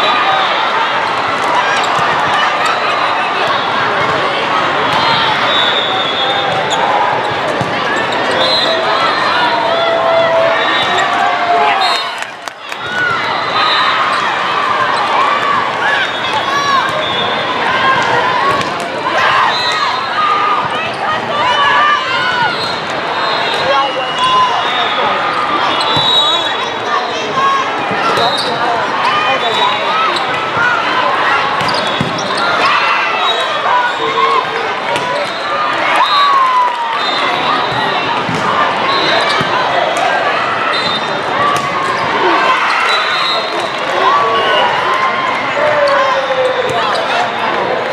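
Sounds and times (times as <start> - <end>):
crowd of overlapping voices: 0.0 - 47.9
volleyballs struck and bouncing: 31.5 - 32.3, 37.7 - 38.6, 41.5 - 42.2.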